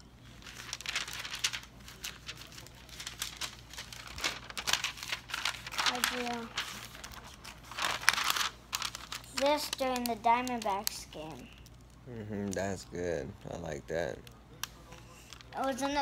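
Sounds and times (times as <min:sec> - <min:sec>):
paper pages rustling: 0:00.2 - 0:11.8.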